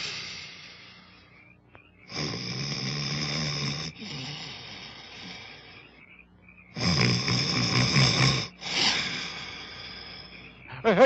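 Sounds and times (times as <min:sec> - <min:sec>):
cartoon snoring: 0:00.0 - 0:01.0, 0:02.1 - 0:05.8, 0:06.7 - 0:10.3.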